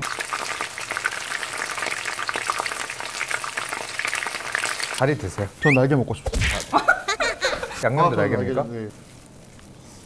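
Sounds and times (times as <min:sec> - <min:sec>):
chicken deep-frying in oil: 0:00.0 - 0:05.5.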